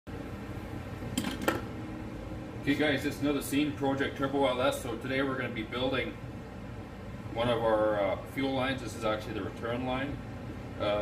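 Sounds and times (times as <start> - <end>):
low workshop hum: 0.1 - 11.0.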